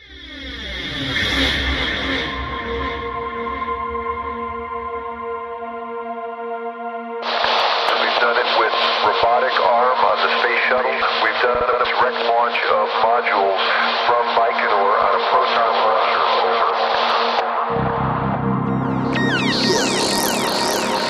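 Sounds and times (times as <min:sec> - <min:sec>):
thin radio-like voice talking: 0:07.3 - 0:17.4
ambient music held tone: 0:17.4 - 0:21.0.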